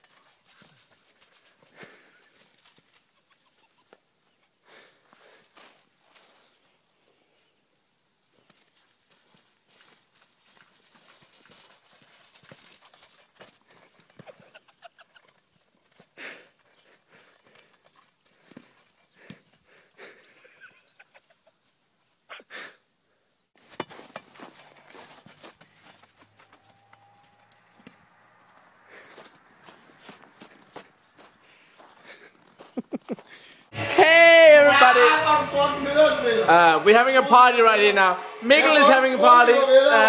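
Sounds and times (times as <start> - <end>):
paws crunching snow and leaves: 0.0 - 3.2, 5.2 - 7.3, 8.2 - 14.3, 23.6 - 33.6.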